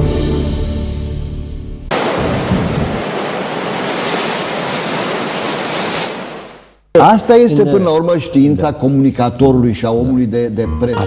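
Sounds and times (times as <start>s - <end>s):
ocean surf waves: 1.9s - 6.8s.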